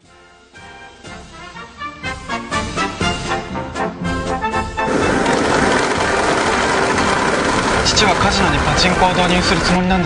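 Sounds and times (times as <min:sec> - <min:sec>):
steel balls clattering in machines: 0:04.9 - 0:10.0.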